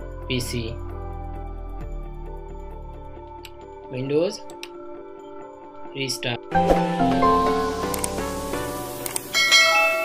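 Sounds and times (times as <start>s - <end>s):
bell-like chiming tones: 9.3s - 10.0s.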